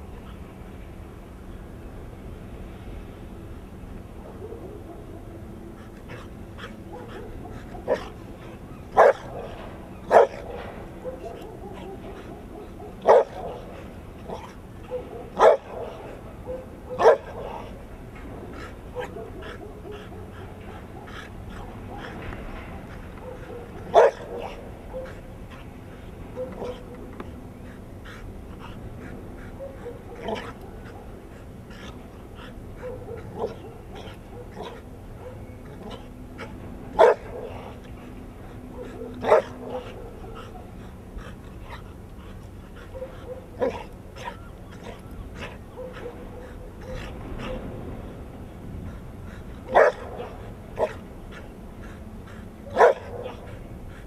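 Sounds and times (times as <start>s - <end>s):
dog barking: 4.2s - 5.4s, 6.1s - 17.8s, 19.0s - 25.3s, 26.4s - 27.0s, 29.5s - 31.1s, 31.7s - 36.1s, 37.0s - 37.8s, 38.7s - 41.8s, 42.8s - 47.6s, 49.6s - 51.0s, 52.3s - 53.6s.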